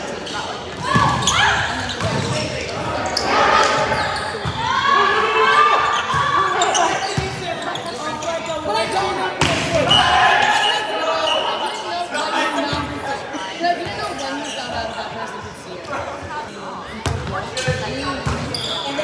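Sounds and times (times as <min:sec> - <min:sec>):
players shouting: 0:02.7 - 0:07.7, 0:08.8 - 0:12.8.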